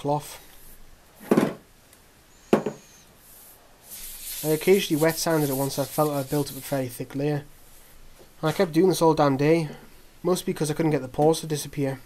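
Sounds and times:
sharp wooden knock: 2.5s - 2.8s
rubbing sound: 3.2s - 6.8s.

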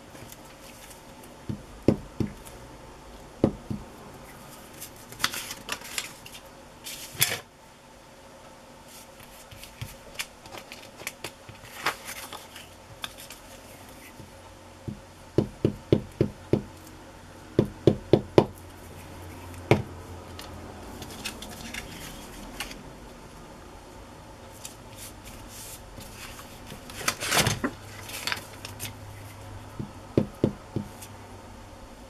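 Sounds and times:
paper rustling: 4.3s - 7.4s, 8.9s - 14.3s, 20.3s - 22.8s, 24.5s - 29.5s.

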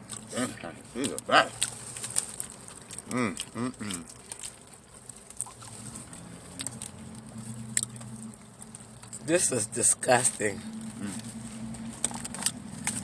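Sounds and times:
wet chewing and mouth clicks: 0.0s - 9.4s, 10.3s - 13.0s.

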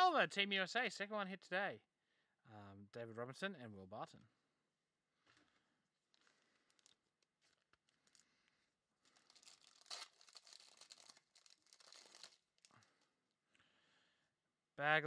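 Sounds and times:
foil wrapper crinkling: 6.1s - 8.4s, 9.0s - 13.0s.

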